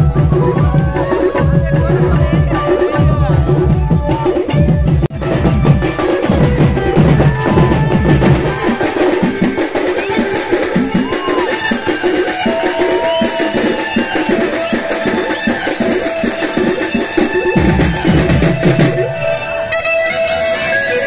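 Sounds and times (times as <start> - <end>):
drummers playing barrel drums: 0.0 - 19.2.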